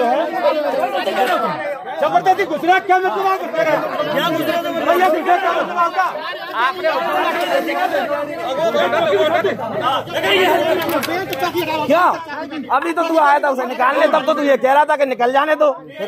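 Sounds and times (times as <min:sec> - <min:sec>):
men arguing loudly: 0:00.0 - 0:16.0.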